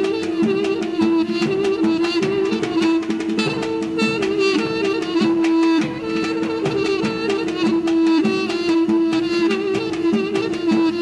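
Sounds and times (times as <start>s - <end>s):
folk dance melody over drone: 0.0s - 11.0s
large drum beats: 0.0s - 11.0s.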